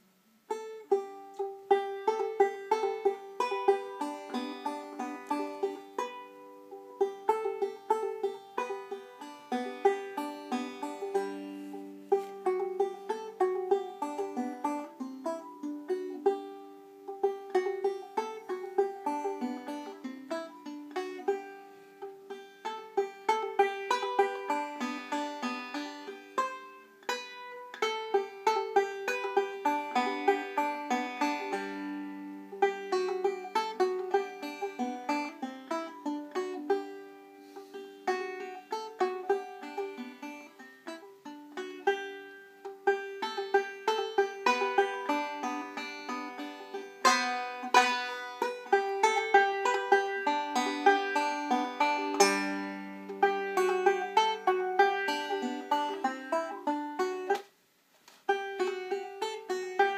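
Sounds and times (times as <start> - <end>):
banjo playing plucked notes: 0.0 - 57.5, 58.3 - 59.9.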